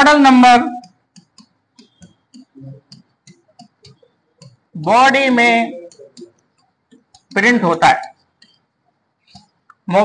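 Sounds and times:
marker pen writing on board: 0:00.6 - 0:09.8.

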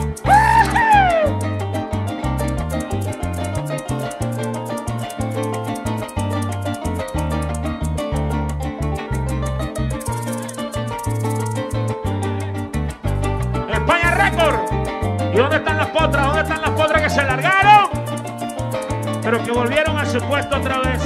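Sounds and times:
harp and bass folk band: 0:00.0 - 0:21.0
maraca shakes: 0:00.0 - 0:21.0
person singing: 0:00.2 - 0:01.5, 0:13.7 - 0:18.0.

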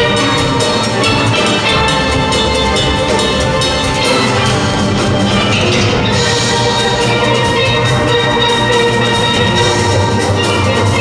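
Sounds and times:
steel band playing: 0:00.0 - 0:11.0.

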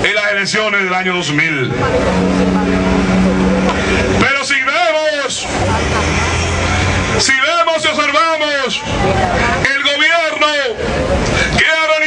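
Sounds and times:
noisy background: 0:00.0 - 0:12.0
vehicle engine drone: 0:00.8 - 0:09.8, 0:10.6 - 0:11.6.

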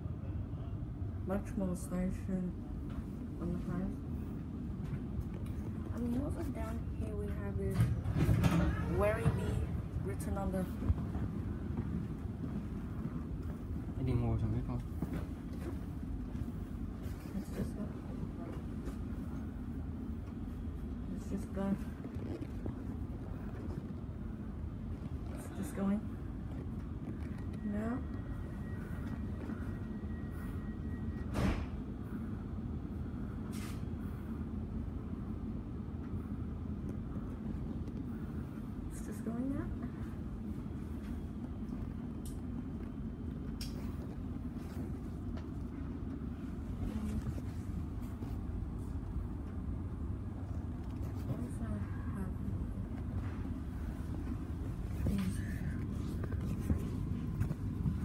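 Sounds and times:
train carriage rumble: 0:00.0 - 0:58.0.

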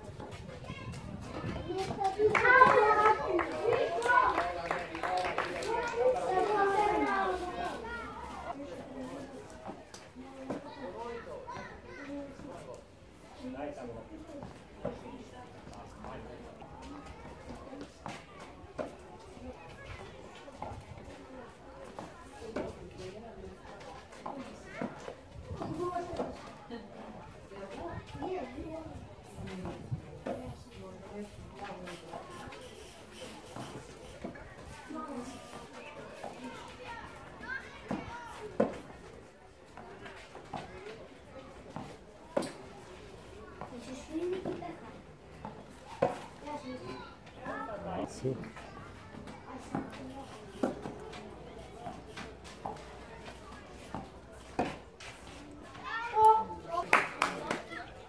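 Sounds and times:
voices chattering: 0:00.0 - 0:58.0.

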